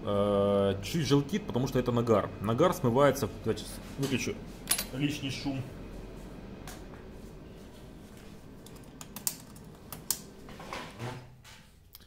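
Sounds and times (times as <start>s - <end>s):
machine fan noise: 0.0s - 11.8s.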